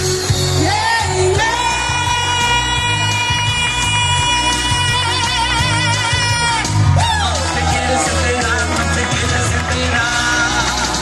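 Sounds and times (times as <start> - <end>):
live dance-band music: 0.0 - 11.0.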